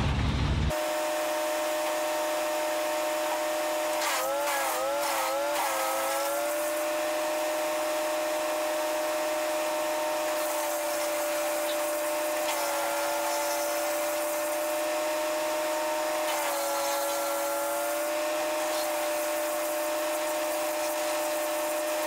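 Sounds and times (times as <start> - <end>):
wood chipper engine running: 0.0 - 22.0.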